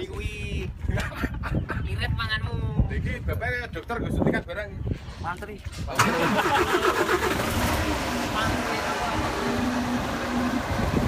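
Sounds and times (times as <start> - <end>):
vehicle engine running: 6.8 - 11.0.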